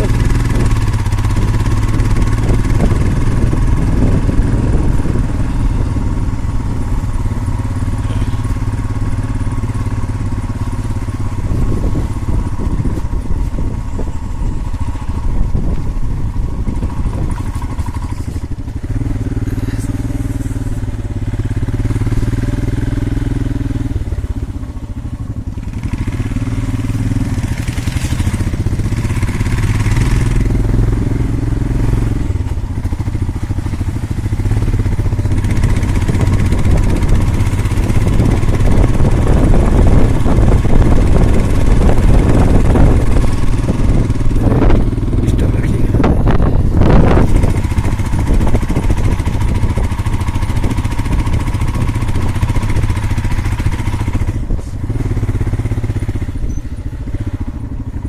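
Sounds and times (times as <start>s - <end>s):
motorcycle engine running: 0.0s - 58.0s
wind on microphone: 0.0s - 58.0s.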